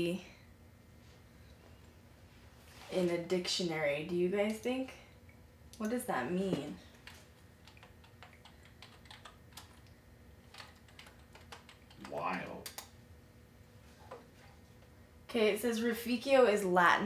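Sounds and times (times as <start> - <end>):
computer keyboard typing: 6.9 - 12.9.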